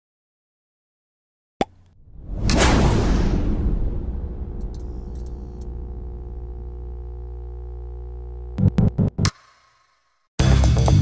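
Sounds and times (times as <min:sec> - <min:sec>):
whoosh into deep rumble: 0:02.0 - 0:06.7.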